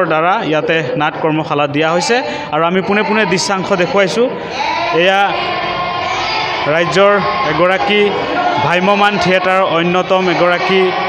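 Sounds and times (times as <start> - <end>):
room noise: 0.0 - 11.0
person speaking: 1.4 - 5.4, 6.6 - 11.0.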